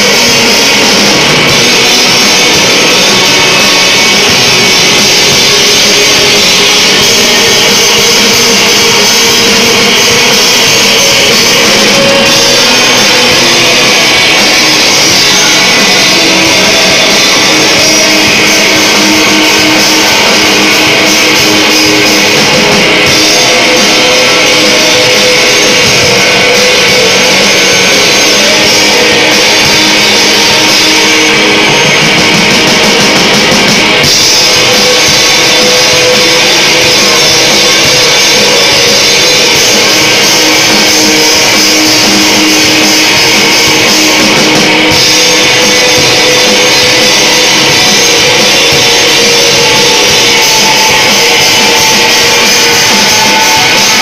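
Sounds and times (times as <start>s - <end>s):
bass guitar: 0.0s - 54.0s
distorted electric guitar: 0.0s - 54.0s
drum kit: 0.0s - 54.0s
heavy rock band playing: 0.0s - 54.0s.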